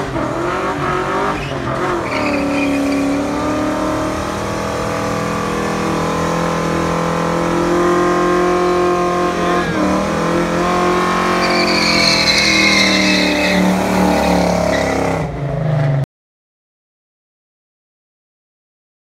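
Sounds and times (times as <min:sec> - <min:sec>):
car engine revving high: 0:00.0 - 0:15.4
tyres squealing: 0:01.3 - 0:03.8, 0:08.5 - 0:15.2.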